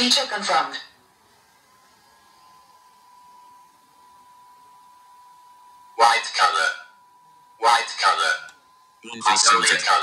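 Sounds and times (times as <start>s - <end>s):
steady high-pitched tone: 7.6s - 10.0s.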